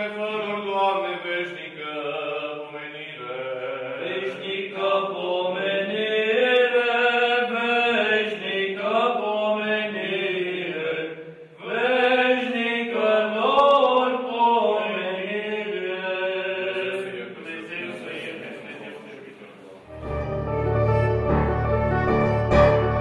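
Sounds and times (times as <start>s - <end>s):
voices chanting a hymn: 0.0s - 20.0s.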